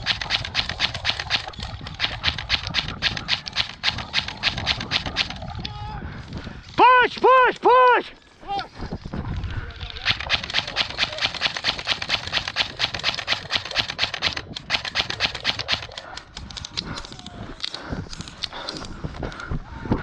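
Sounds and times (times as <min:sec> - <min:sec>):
loose gear rattling: 0:00.0 - 0:05.4, 0:09.8 - 0:16.8
running footsteps through dry grass: 0:00.0 - 0:06.8, 0:08.7 - 0:17.2.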